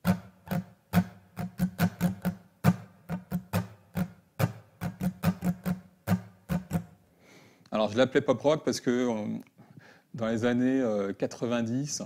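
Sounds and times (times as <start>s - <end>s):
acoustic guitar strumming: 0.0s - 7.0s.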